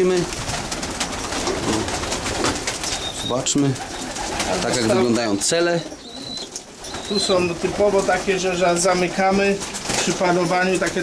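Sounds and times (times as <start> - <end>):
pigeons cooing: 0.0 - 10.2
pigeons clicking and scuffling: 0.0 - 11.0.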